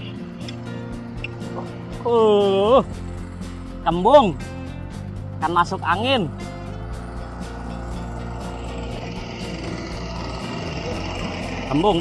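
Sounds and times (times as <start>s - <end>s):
generator running: 0.0s - 12.0s.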